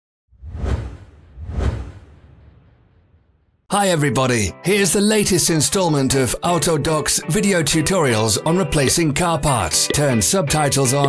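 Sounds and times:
deep whoosh: 0.3 - 3.6.

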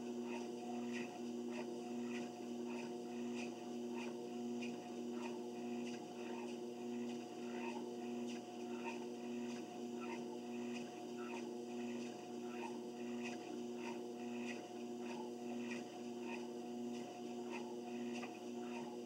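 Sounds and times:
treadmill motor humming: 0.0 - 19.0
footsteps on treadmill belt: 3.4 - 18.9.

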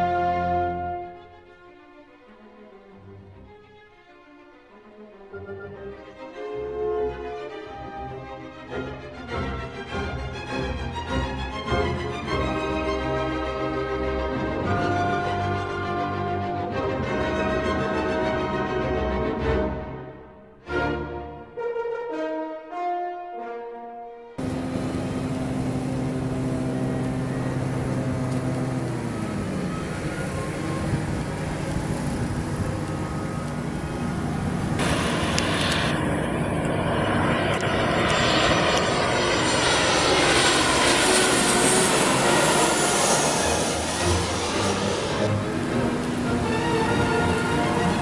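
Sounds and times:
jet airliner engines: 0.0 - 1.5, 5.3 - 19.6, 24.4 - 48.0
high engine whine: 24.4 - 48.0
plane passing overhead rushing: 24.4 - 48.0.

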